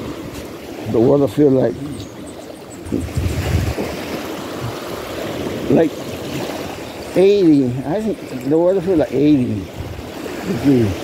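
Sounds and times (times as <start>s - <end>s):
small waves washing on sand: 0.0s - 11.0s
wind rumble on microphone: 0.0s - 11.0s.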